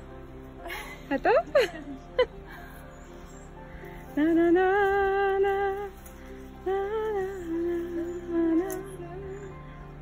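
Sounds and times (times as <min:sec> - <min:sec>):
woman singing slow melody: 0:04.0 - 0:10.0.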